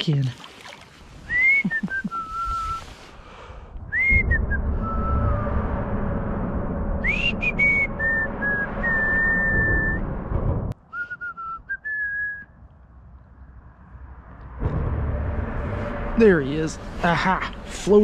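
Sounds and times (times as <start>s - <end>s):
low rumbling noise: 1.2s - 10.8s, 11.8s - 18.0s
man whistling a tune: 1.3s - 2.9s, 3.9s - 5.5s, 7.0s - 10.0s, 10.8s - 12.5s.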